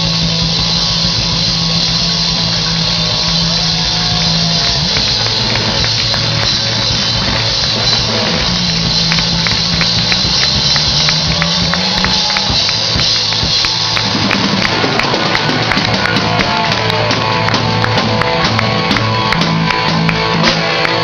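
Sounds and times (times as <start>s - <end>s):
live rock band playing: 0.0s - 21.0s
sharp hits keeping the beat: 0.0s - 21.0s.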